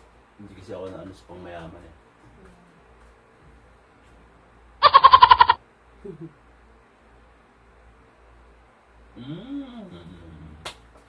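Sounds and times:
goat bleat: 0:04.8 - 0:05.6.

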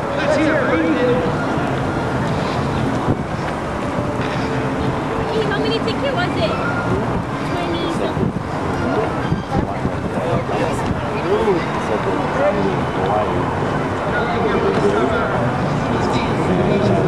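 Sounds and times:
indistinct crowd voices: 0:00.0 - 0:17.0
wind on microphone: 0:01.1 - 0:17.0.

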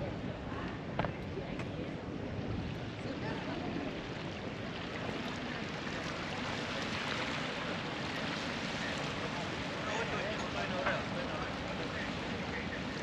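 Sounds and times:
light wind: 0:00.0 - 0:13.0.

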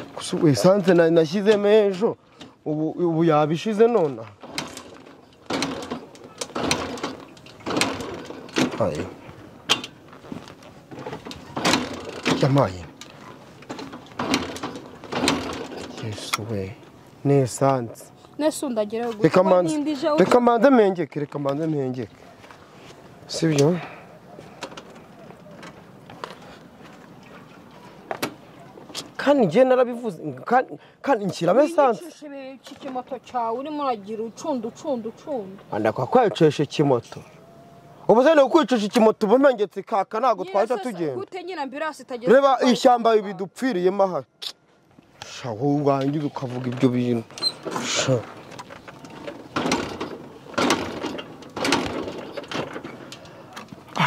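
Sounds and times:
motorcycle kick-starter rattling: 0:00.0 - 0:17.9, 0:19.0 - 0:22.6, 0:24.4 - 0:26.6, 0:32.2 - 0:37.0, 0:45.6 - 0:54.0
outdoor background hiss: 0:00.0 - 0:54.0.

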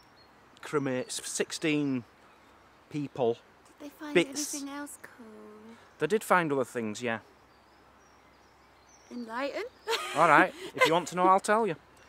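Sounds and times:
faint outdoor background hiss: 0:00.0 - 0:12.0
person saying yeah: 0:04.1 - 0:04.8.

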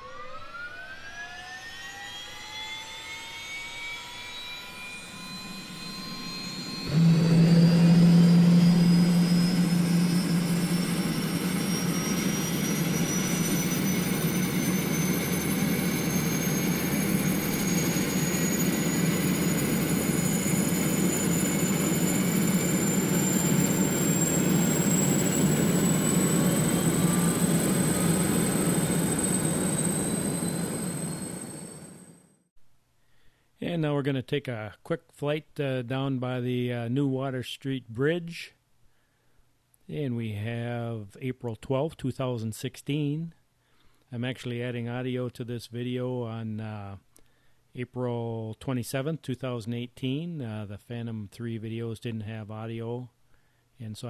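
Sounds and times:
drone motors whining and buzzing: 0:00.0 - 0:32.3.

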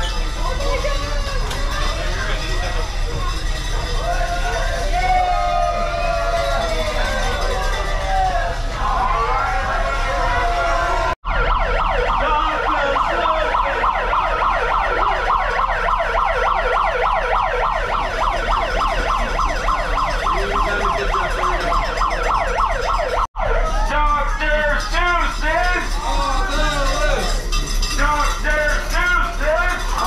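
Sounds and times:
siren-like warble: 0:01.6 - 0:23.9.

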